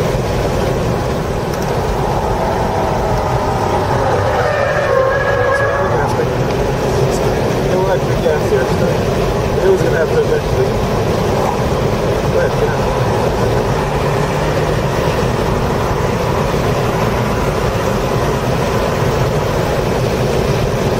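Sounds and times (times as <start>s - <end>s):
car engine pulling under throttle: 0.0s - 20.9s
road and wind noise: 0.0s - 20.9s.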